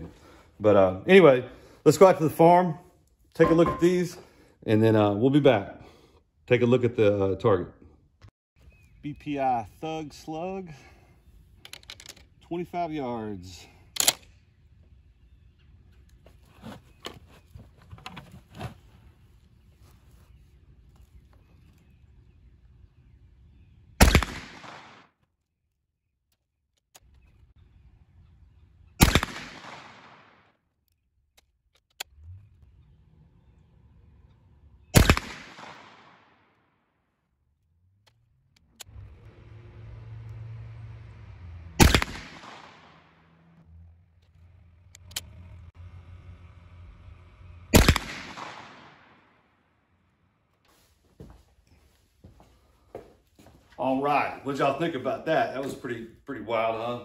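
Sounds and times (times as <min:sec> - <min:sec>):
shotgun firing with echo: 0:24.0 - 0:25.1, 0:29.0 - 0:30.4, 0:35.0 - 0:36.3, 0:41.8 - 0:43.0, 0:47.8 - 0:49.2
low hum: 0:37.3 - 0:50.6.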